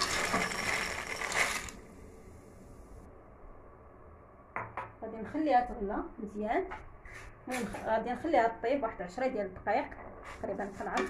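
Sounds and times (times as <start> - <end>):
dry pasta rattling into a pot: 0.0 - 1.8.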